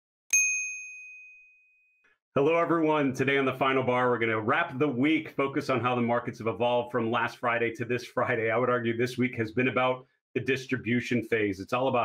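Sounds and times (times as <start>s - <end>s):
notification bell ding: 0.3s - 1.5s.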